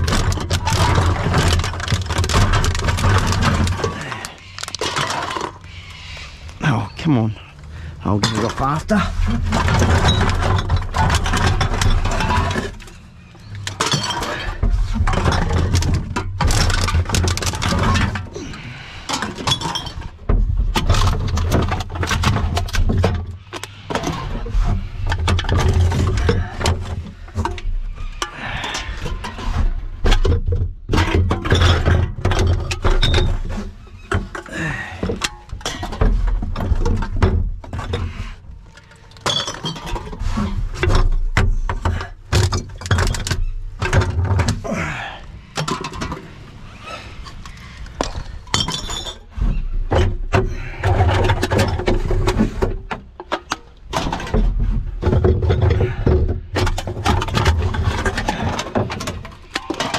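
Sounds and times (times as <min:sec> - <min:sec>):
cans and bottles clattering: 0:00.0 - 0:06.0, 0:07.8 - 0:44.8, 0:45.5 - 0:59.9.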